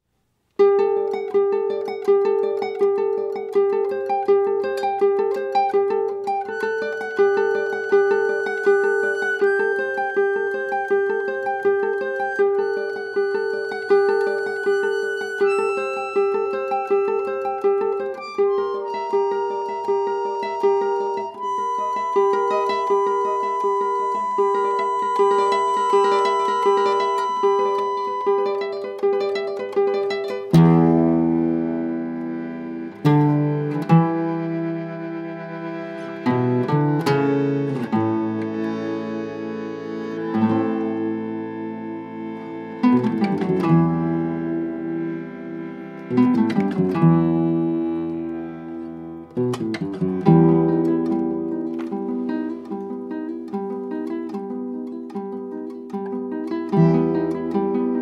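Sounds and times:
folk ensemble playing: 0:00.6 - 0:58.0
guitar plucking: 0:00.6 - 0:58.0.

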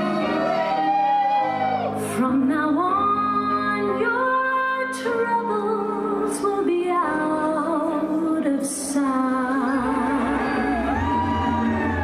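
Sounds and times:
musical accompaniment: 0:00.0 - 0:12.0
person singing: 0:00.0 - 0:12.0.

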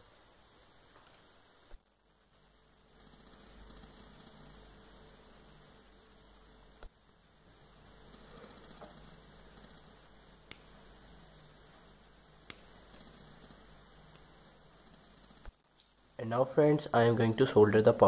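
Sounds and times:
faint room hiss: 0:00.0 - 0:18.0
mains hum: 0:00.0 - 0:18.0.

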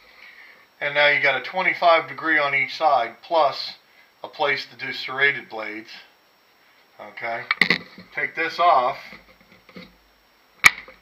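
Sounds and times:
plastic handling noises: 0:07.4 - 0:08.3, 0:08.9 - 0:10.0.

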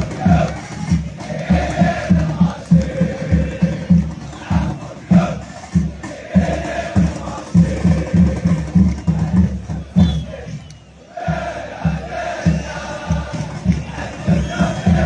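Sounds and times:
crowd chanting: 0:00.0 - 0:15.0
pounding drum beat: 0:00.0 - 0:15.0.

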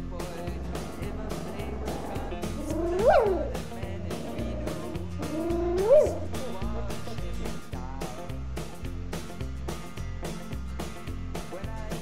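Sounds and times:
background music: 0:00.0 - 0:12.0
puppy whining: 0:00.7 - 0:06.4.

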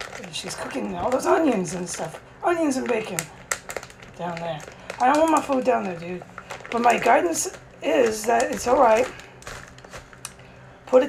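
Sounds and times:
faint clicks and crackles: 0:00.0 - 0:10.5
plastic bag crinkling: 0:00.0 - 0:11.0.

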